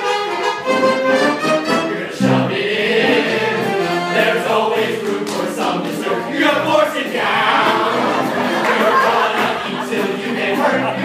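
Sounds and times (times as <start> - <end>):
male chorus singing show tune: 1.7 - 11.0.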